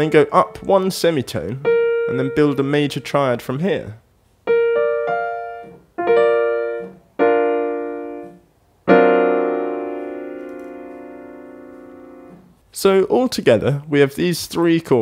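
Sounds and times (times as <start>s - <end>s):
piano chords: 0.0s - 3.6s, 4.5s - 12.6s.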